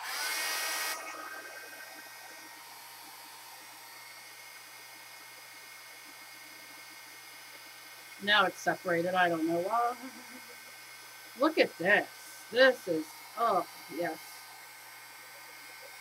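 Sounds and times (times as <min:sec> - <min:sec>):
electric blower motor whining: 0:00.0 - 0:16.0.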